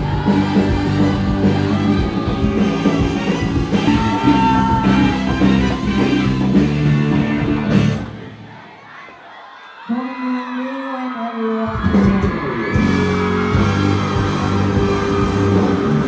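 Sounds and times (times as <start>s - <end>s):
live band music: 0.0s - 8.4s, 11.8s - 16.0s
crowd noise: 0.0s - 16.0s.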